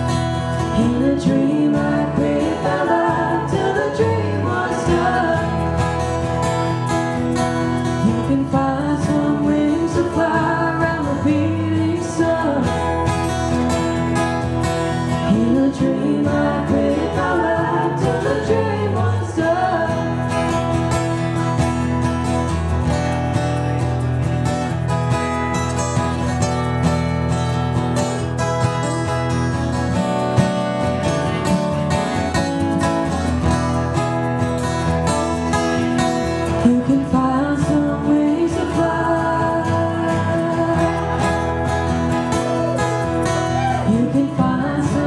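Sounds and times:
person singing: 0.0s - 6.3s, 7.9s - 13.6s, 15.1s - 20.7s, 36.4s - 45.0s
acoustic guitars strumming: 0.0s - 45.0s.

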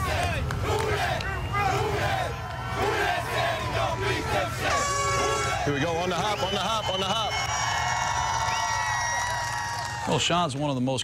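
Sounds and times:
men shouting together: 0.0s - 5.8s.

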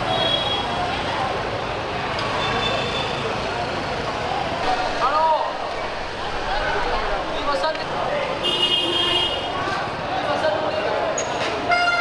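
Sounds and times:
motorbikes passing: 0.0s - 11.7s
crowd talking: 0.0s - 12.0s.

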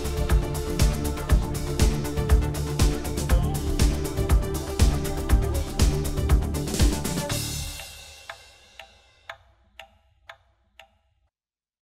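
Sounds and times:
outro music: 0.0s - 8.8s
clock ticking: 0.0s - 11.0s.

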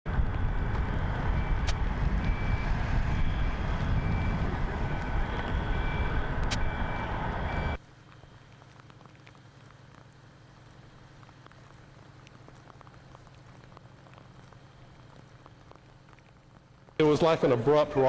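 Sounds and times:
loud steady rumble: 0.1s - 18.0s
reversing alarm beeping: 1.3s - 7.8s.

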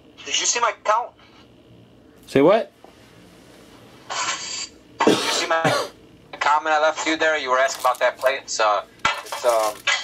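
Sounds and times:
person coughing: 5.0s - 6.0s.

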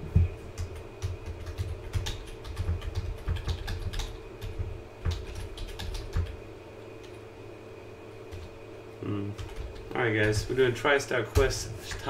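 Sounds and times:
computer keyboard typing: 0.6s - 6.4s, 9.4s - 10.5s.

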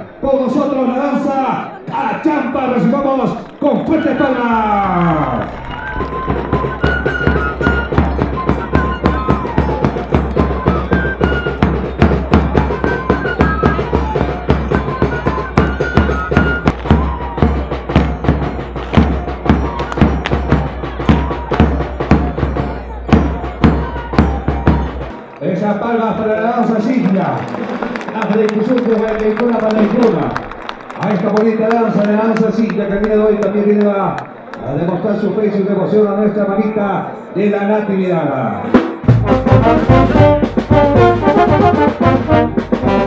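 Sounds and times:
high melody line: 5.7s - 25.2s, 38.8s - 43.0s
steady drum beat: 6.0s - 25.2s, 38.7s - 43.0s.

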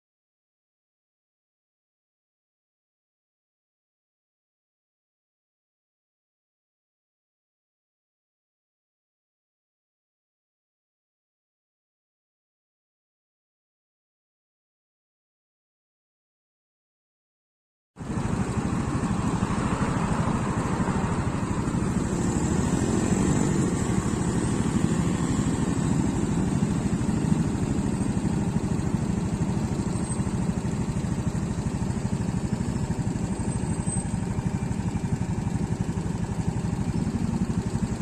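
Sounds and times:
motorcycle engine running: 18.0s - 38.0s.

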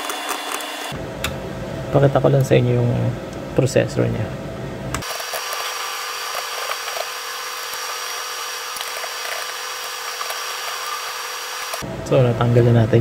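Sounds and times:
steady hum and whir: 0.0s - 13.0s.

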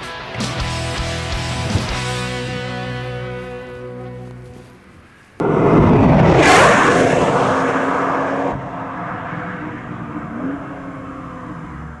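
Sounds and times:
steady hum: 5.4s - 11.0s
car whooshing past: 5.4s - 12.0s.

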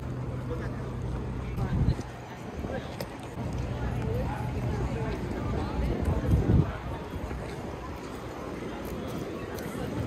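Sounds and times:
faint voices of passers-by: 0.0s - 10.0s
wind buffeting microphone: 1.5s - 10.0s.

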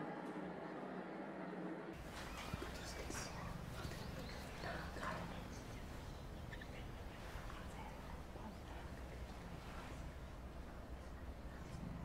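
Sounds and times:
faint indistinct voices: 2.0s - 12.0s.

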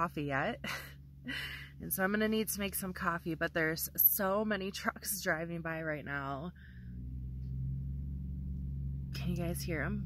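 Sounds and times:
trucks driving by: 0.0s - 10.0s.

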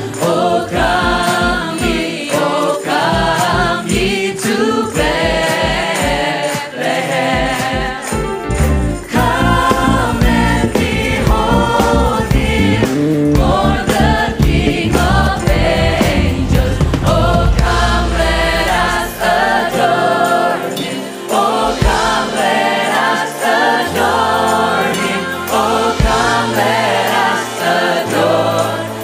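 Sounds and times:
band playing steady beat: 0.0s - 28.8s
group of voices singing: 0.0s - 29.0s.

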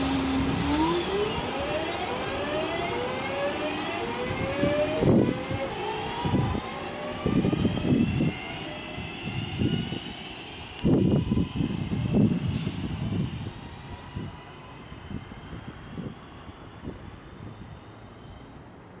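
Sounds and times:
electric train motor whine: 0.0s - 12.5s.

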